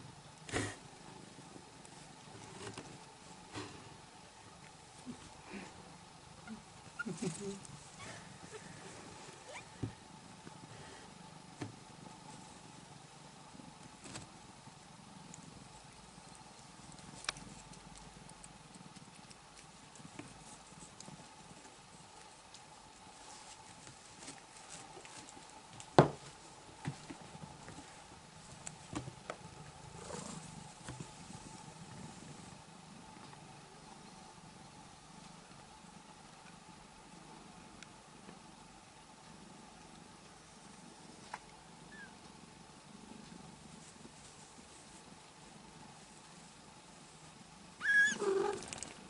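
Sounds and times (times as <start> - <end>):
cat purring: 0.0 - 49.0
faint steady hum: 0.0 - 49.0
cats moving on a blanket: 15.2 - 33.5, 43.1 - 49.0.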